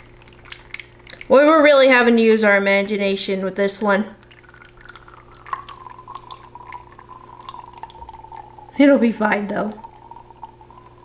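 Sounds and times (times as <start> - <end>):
wet plops and drips of batter: 0.0 - 3.0, 4.0 - 8.8
faint steady hum: 0.0 - 11.0.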